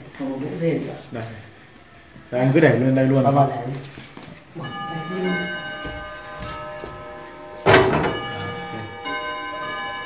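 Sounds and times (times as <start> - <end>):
metal ringing bell-like tones: 4.6 - 10.0
faint metal knocks: 5.8 - 8.9.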